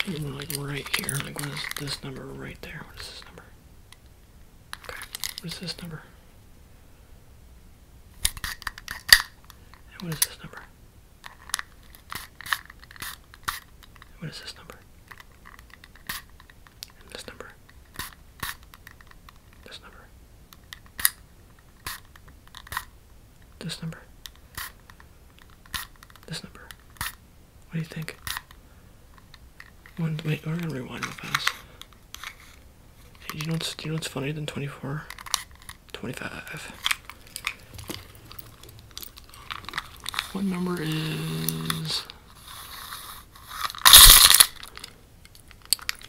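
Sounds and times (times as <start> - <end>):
measuring tape rustling: 0.0 - 2.1, 36.8 - 44.9
handling scrape: 36.8 - 44.8.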